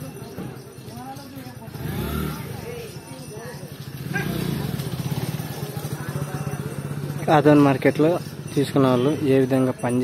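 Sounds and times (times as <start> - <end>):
motorcycle engine idling: 1.7 - 9.8.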